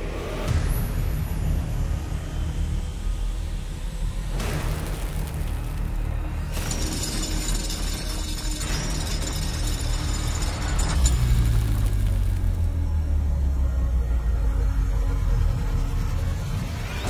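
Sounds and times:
low rumbling drone: 9.4s - 17.0s.

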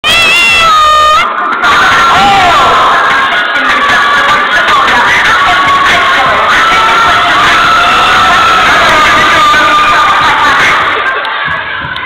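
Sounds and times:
audience cheering and shouting: 0.0s - 12.0s.

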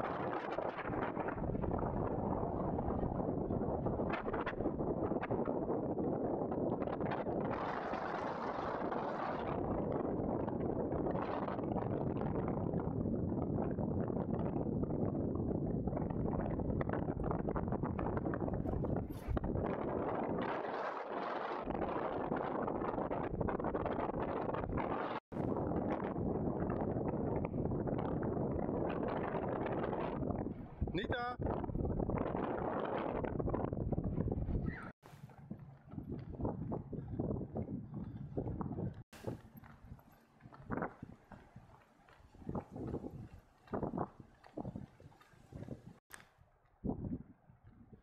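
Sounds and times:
wind blowing across microphone: 0.0s - 48.0s.

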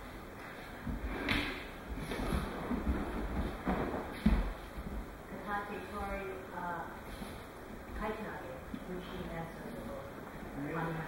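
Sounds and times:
bodies thudding on mats: 0.9s - 5.1s.

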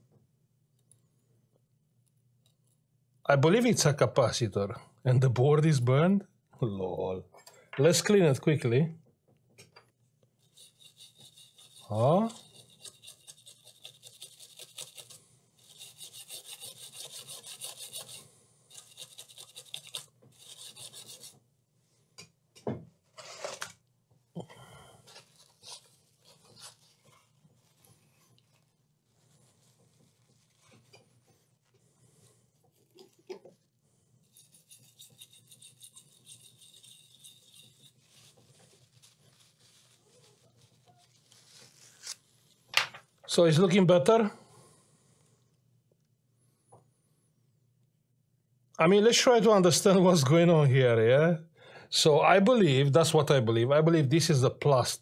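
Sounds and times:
brush scrubbing circuit board: 10.4s - 21.4s, 34.2s - 40.5s.

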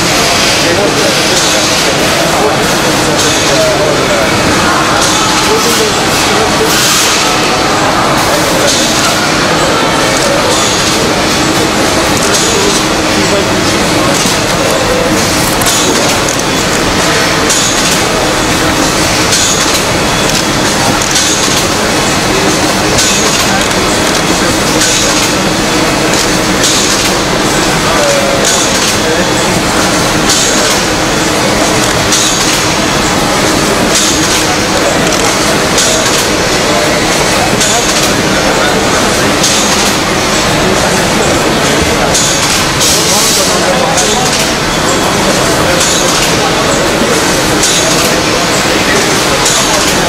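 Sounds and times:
machine hissing: 0.0s - 50.0s
machinery clattering: 0.0s - 50.0s
murmur of voices: 0.0s - 50.0s.

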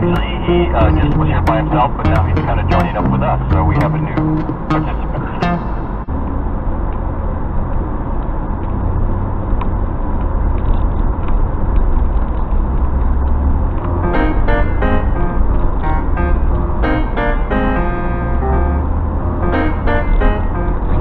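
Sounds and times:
guitar music: 0.0s - 6.1s, 13.8s - 21.0s.

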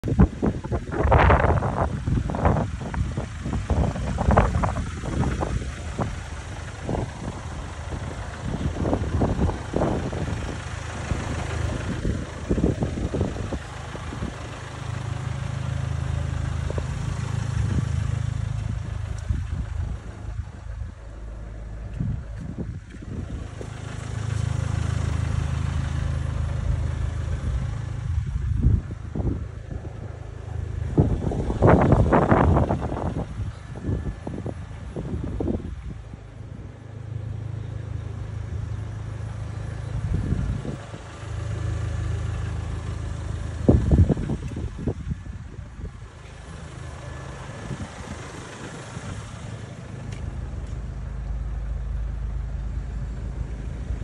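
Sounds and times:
vehicle engine running: 0.0s - 54.0s
wind noise on microphone: 0.0s - 54.0s.

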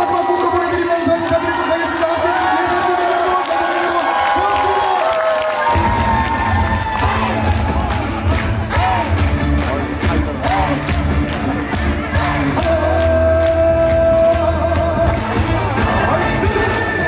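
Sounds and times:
audience cheering and shouting: 0.0s - 17.0s
amplified live music: 5.6s - 17.0s.

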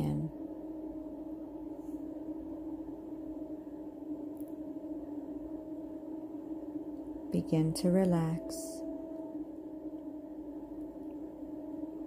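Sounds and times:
steady meditation drone tone: 0.0s - 12.0s.

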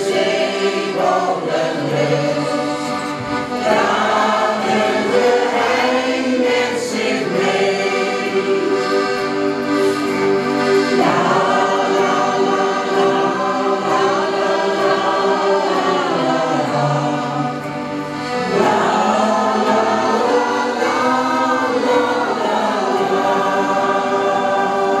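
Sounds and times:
accordion: 0.0s - 25.0s
choir singing in harmony: 0.0s - 25.0s.

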